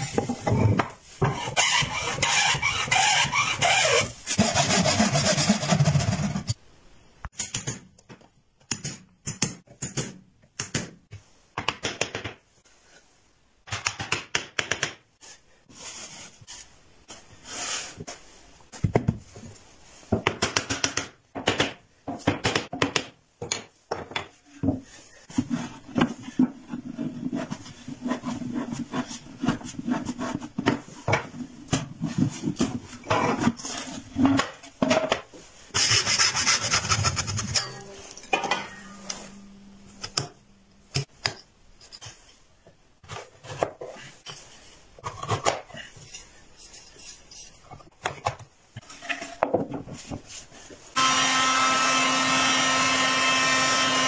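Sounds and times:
wooden knocks and scrapes: 0.0 - 3.1.

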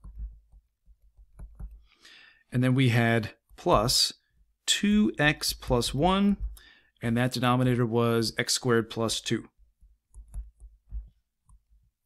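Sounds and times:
stylus tapping on screen: 0.0 - 1.8, 4.9 - 6.6, 9.8 - 11.8.

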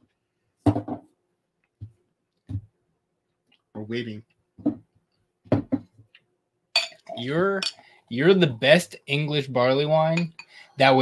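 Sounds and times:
glass bottle clinking against glass: 6.8 - 7.8, 10.1 - 10.6.

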